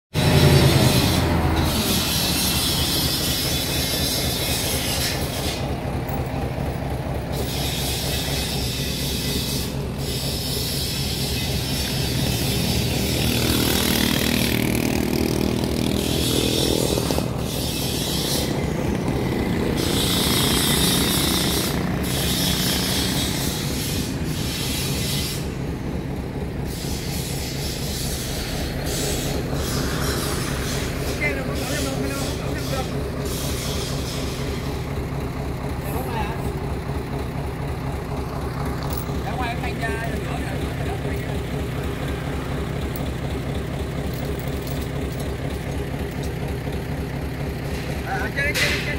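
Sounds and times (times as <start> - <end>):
truck engine running: 0.1 - 48.9.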